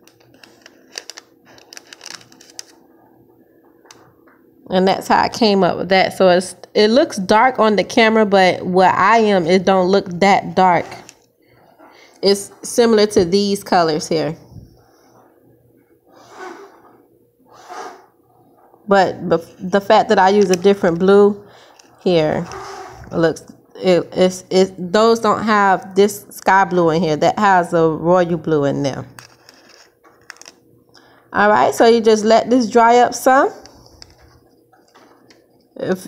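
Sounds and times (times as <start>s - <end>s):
low steady hum: 0.0s - 36.0s
breaths close to microphone: 11.4s - 12.2s, 21.4s - 23.1s, 30.9s - 31.3s.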